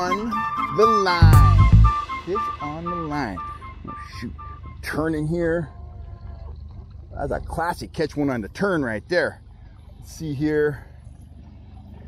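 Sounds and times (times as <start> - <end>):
man's voice: 0.0 - 5.7
two-note electronic chime: 1.2 - 5.2.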